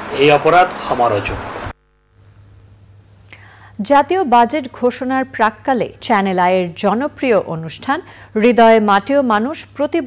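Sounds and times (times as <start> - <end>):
steady low hum: 0.0 - 10.0
soft breath: 3.2 - 3.8.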